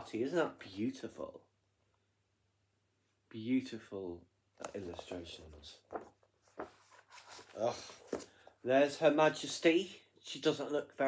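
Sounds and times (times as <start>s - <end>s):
book pages turning: 4.6s - 8.5s.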